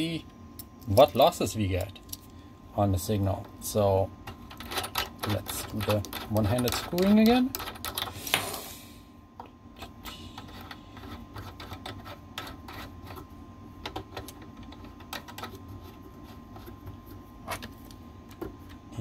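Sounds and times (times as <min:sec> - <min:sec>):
low steady hum: 0:00.0 - 0:19.0
metallic clicks and scrapes: 0:04.3 - 0:08.2.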